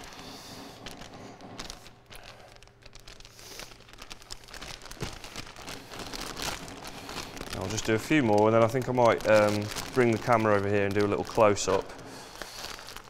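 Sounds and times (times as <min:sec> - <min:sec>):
plastic bag crinkling: 0:00.0 - 0:13.0.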